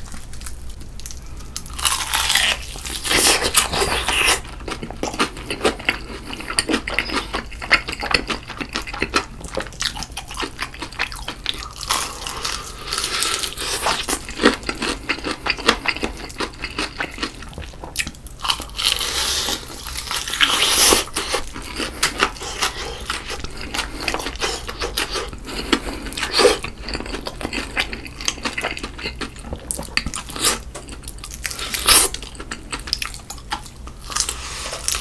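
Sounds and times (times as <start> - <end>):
crunchy fried chicken chewing: 0.0 - 35.0.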